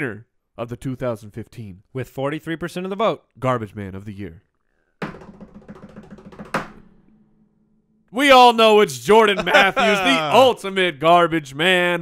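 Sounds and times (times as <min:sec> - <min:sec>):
drum roll: 0:05.0 - 0:07.4.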